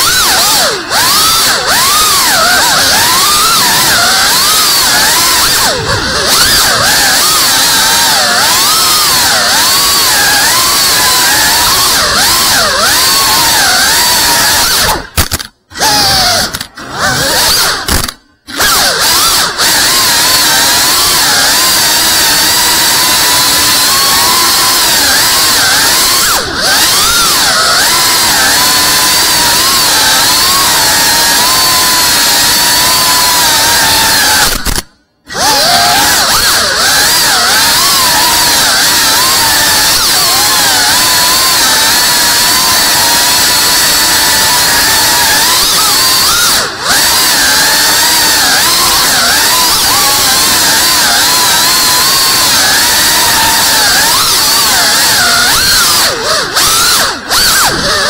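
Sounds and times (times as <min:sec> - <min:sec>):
drone propellers whining: 0:00.0 - 0:58.0.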